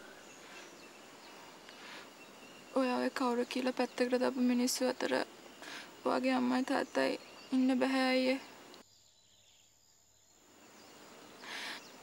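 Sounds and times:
faint insects: 0.0 - 12.0
woman speaking: 2.7 - 5.3, 6.0 - 8.5.

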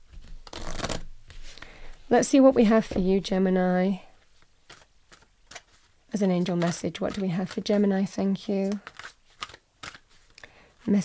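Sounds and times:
cards being shuffled: 0.1 - 1.8, 4.2 - 11.0.

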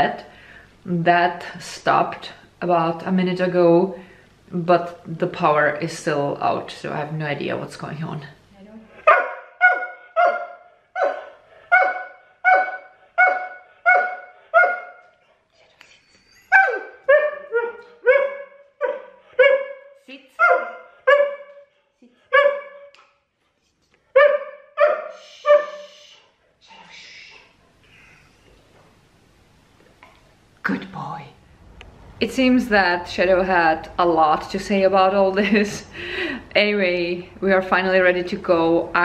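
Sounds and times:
dog barking: 9.0 - 15.1, 16.5 - 21.7, 22.3 - 22.9, 24.1 - 25.8.

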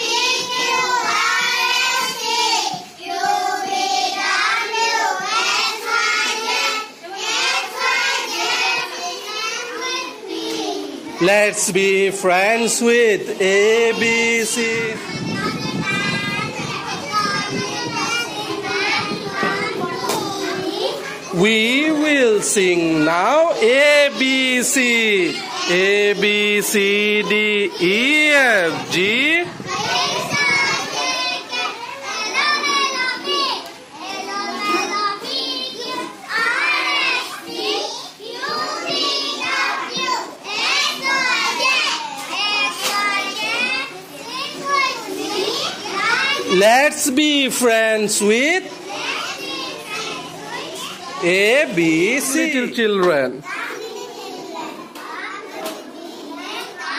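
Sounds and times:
children chanting: 0.0 - 47.0, 48.4 - 56.9.

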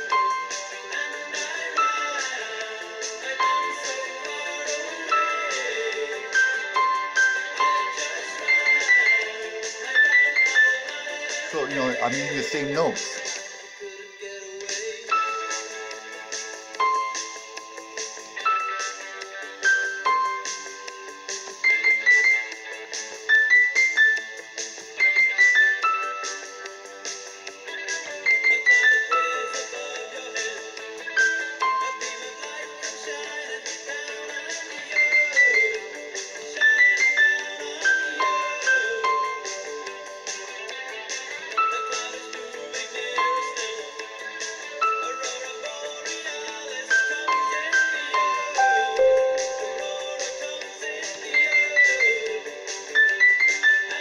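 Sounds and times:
recorded music: 0.0 - 54.0
keyboard bright descending phrase: 48.6 - 50.7
keyboard soft sustained chords: 48.6 - 50.8.

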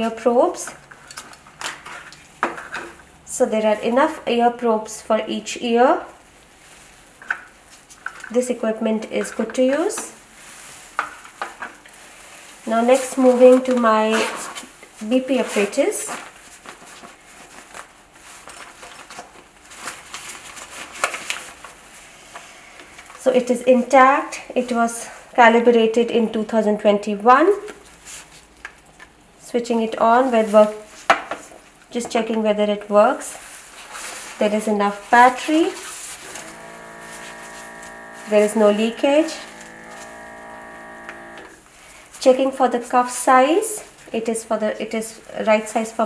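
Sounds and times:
blood pressure monitor air pump: 35.3 - 41.6.

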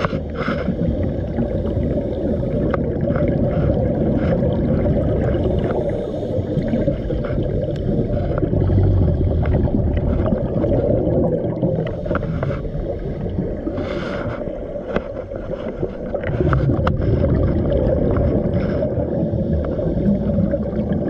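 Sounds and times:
small clicks and crackles: 0.0 - 1.4, 2.0 - 11.0, 11.6 - 19.8
low underwater rumble: 0.0 - 21.0
scuba exhaust bubbles hissing: 0.0 - 21.0.

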